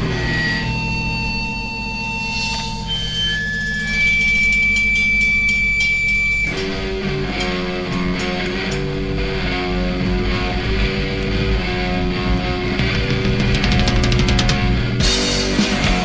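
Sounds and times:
electric guitar: 0:00.0 - 0:16.0
low bass drone: 0:00.0 - 0:16.0.

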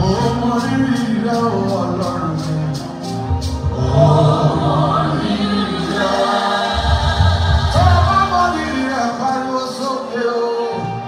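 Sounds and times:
band accompaniment: 0:00.0 - 0:11.0
choir singing gospel: 0:00.0 - 0:11.0
lead singer: 0:00.0 - 0:11.0.

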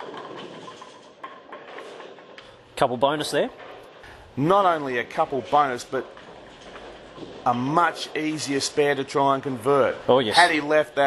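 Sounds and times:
bowling ball hitting pins: 0:00.0 - 0:02.4, 0:03.4 - 0:08.8
pins clattering: 0:00.0 - 0:02.6.

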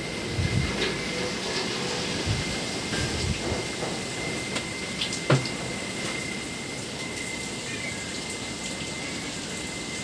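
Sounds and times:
rain hissing on foliage: 0:00.0 - 0:10.0.

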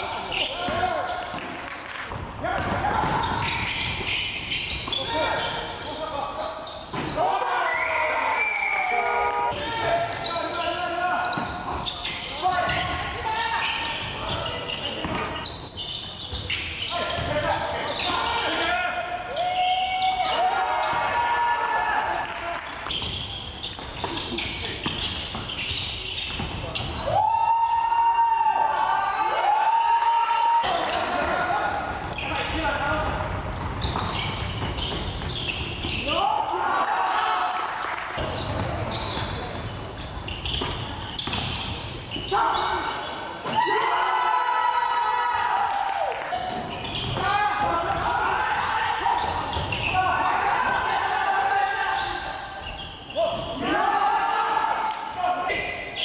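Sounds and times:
echoing voices: 0:41.8 - 0:56.0.

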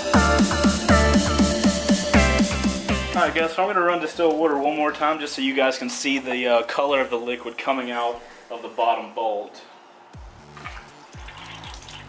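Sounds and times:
background music with bass: 0:00.0 - 0:03.6, 0:10.1 - 0:12.0
water splashing into a plastic pan: 0:10.5 - 0:12.0.

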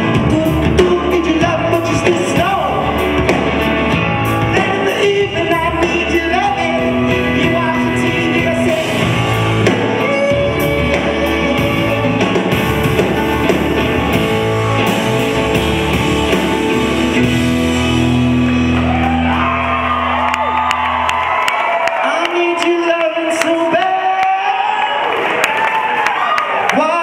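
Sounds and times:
man singing lead: 0:00.0 - 0:03.3, 0:03.9 - 0:15.2
acoustic band playing: 0:00.0 - 0:21.8
crowd whooping: 0:00.7 - 0:27.0
crowd clapping: 0:18.0 - 0:27.0.

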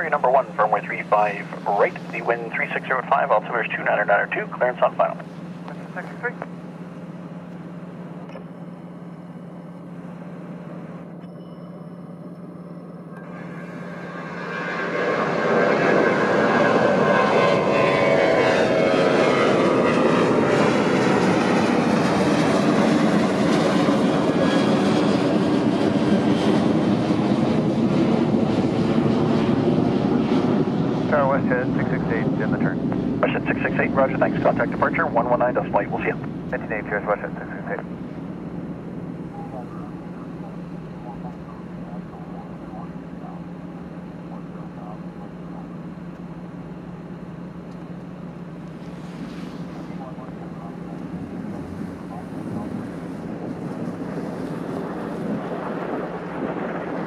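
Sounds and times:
jet engines roaring and whining: 0:00.0 - 0:57.0.

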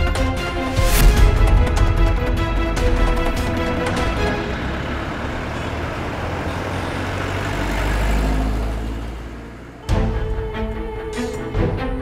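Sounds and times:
background music: 0:00.0 - 0:12.0
rushing noise with deep rumble: 0:00.4 - 0:06.4.

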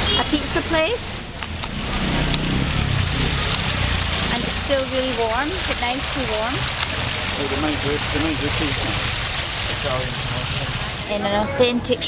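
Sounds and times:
street traffic engine rumble: 0:00.0 - 0:12.0
water curtain splashing into basin: 0:01.7 - 0:11.1.

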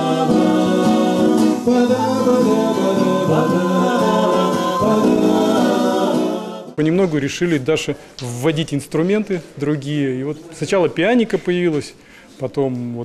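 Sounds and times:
people singing in harmony: 0:00.0 - 0:06.8
strummed acoustic guitars: 0:00.0 - 0:06.8.

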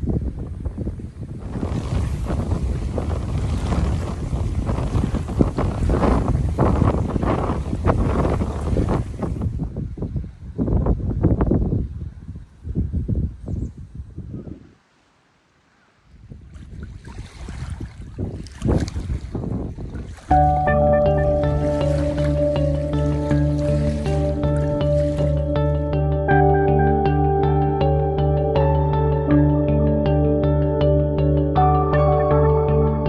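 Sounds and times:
wind buffeting microphone: 0:00.0 - 0:14.9, 0:16.0 - 0:27.9
lake waves lapping on shore: 0:00.6 - 0:10.6, 0:14.7 - 0:25.9.

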